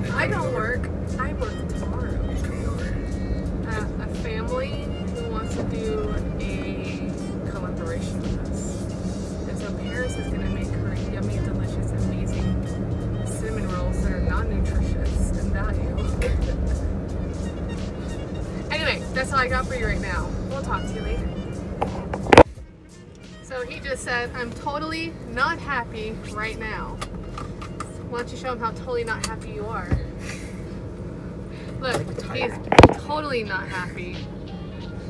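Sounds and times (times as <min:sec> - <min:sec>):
voices: 0:00.0 - 0:08.8, 0:09.5 - 0:12.6, 0:13.2 - 0:16.9, 0:18.6 - 0:22.2, 0:31.7 - 0:34.4
music playing: 0:00.0 - 0:28.2, 0:32.2 - 0:35.0
car engine and road rumble: 0:00.0 - 0:35.0.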